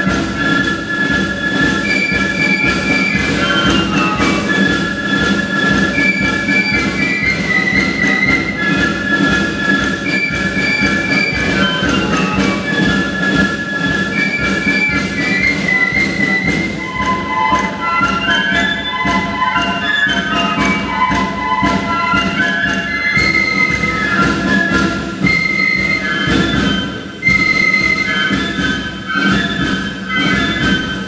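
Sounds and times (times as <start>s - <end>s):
flute band playing melody: 0.0s - 31.0s
steady percussive beat: 0.0s - 31.0s.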